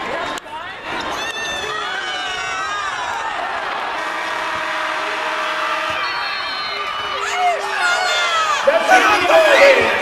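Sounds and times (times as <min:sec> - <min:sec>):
roaring crowd: 0:00.0 - 0:10.0
buzzer horn steady tone: 0:04.0 - 0:06.8.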